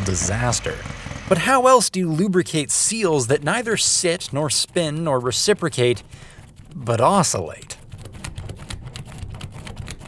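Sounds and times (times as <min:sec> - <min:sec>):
pen scratching on paper: 0:02.9 - 0:10.0.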